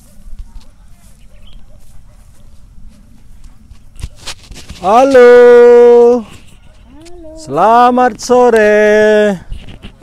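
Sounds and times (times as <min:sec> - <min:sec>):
microphone handling clicks and rustles: 0:00.0 - 0:00.8, 0:02.5 - 0:10.0.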